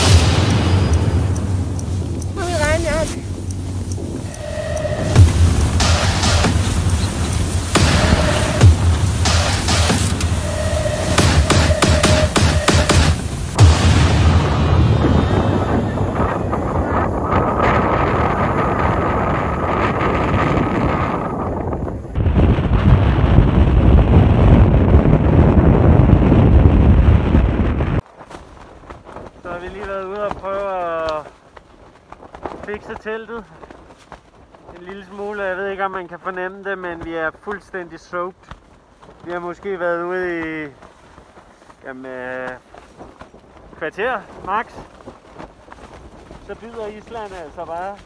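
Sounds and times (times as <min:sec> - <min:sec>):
wind buffeting microphone: 0:00.0 - 0:48.0
tent fabric flapping: 0:01.7 - 0:13.6, 0:15.2 - 0:48.0.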